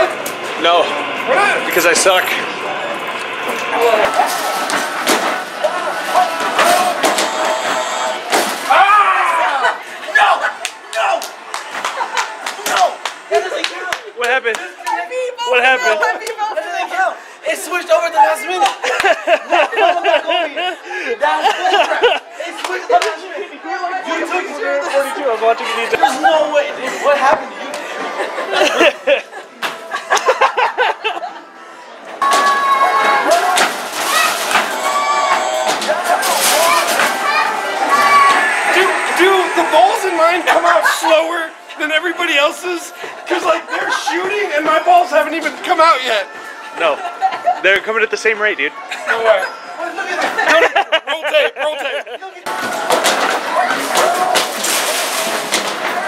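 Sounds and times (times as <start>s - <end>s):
people laughing: 0.0s - 17.0s, 18.5s - 23.7s, 25.0s - 32.0s, 32.6s - 45.7s, 46.3s - 48.2s, 48.8s - 54.4s
arcade chatter: 0.0s - 56.0s
voices: 0.0s - 56.0s.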